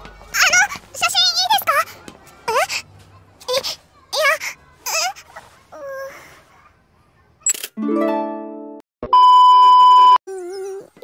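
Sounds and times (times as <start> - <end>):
censor bleep tone: 9.1 - 10.2.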